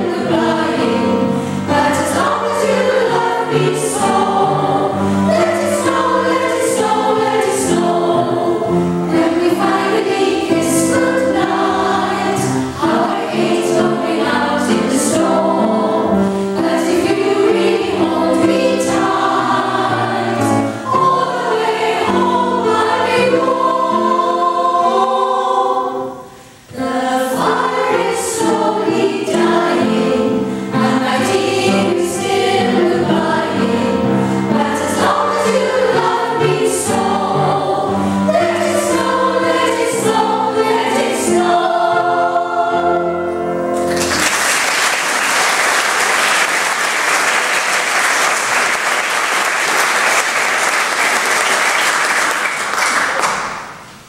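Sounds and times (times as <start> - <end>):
women's choir singing: 0.0 - 44.2
piano accompaniment: 0.0 - 54.0
audience applause: 43.9 - 53.7.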